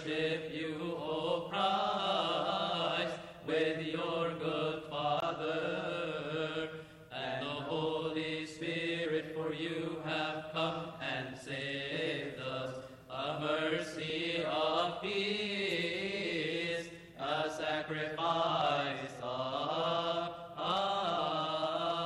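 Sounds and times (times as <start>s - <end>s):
congregation chanting long notes: 0.0s - 22.0s.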